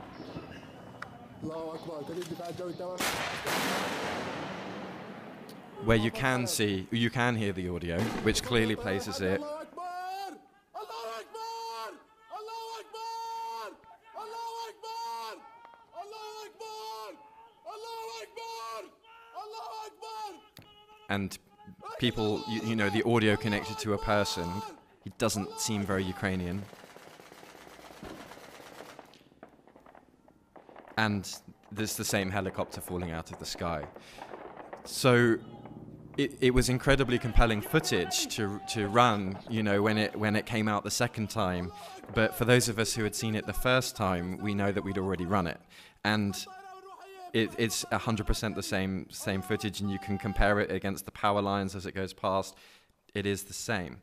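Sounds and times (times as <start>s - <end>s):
loud blasts: 3.0s - 6.1s, 32.0s - 39.5s
raised voices: 8.2s - 26.6s, 34.9s - 45.3s
rapid automatic gunfire: 26.5s - 30.0s, 33.3s - 35.1s.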